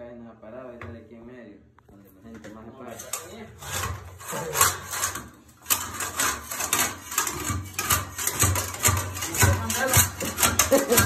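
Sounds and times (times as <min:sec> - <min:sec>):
floor scraper scraping tiles: 0:02.9 - 0:11.0.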